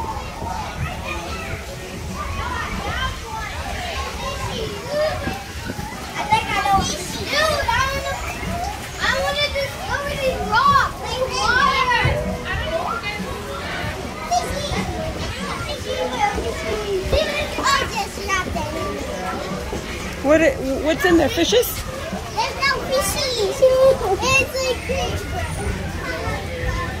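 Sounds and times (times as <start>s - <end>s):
children chattering and calling out: 0.0s - 27.0s.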